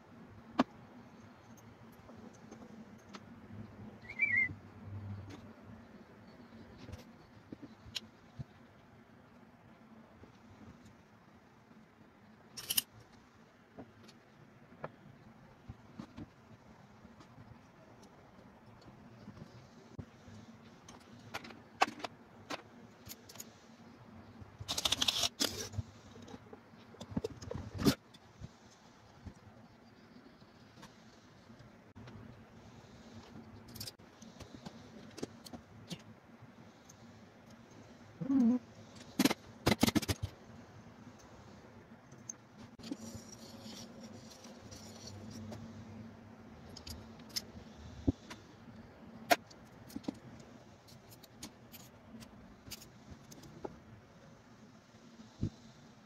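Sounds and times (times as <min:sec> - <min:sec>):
metal tools clicking and clinking: 0:12.6 - 0:12.9.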